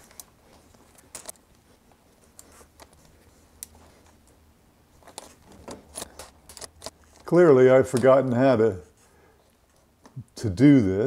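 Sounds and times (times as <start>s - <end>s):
metal parts clicking: 0.9s - 1.4s, 5.0s - 7.3s.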